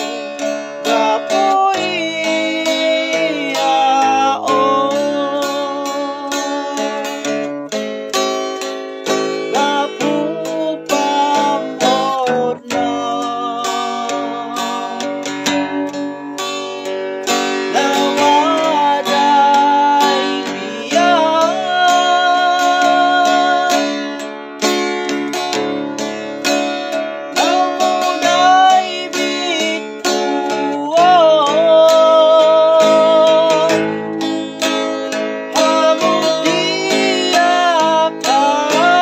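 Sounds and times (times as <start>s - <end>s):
man singing: 0.0s - 26.6s, 27.3s - 39.0s
strummed acoustic guitar: 0.0s - 39.0s.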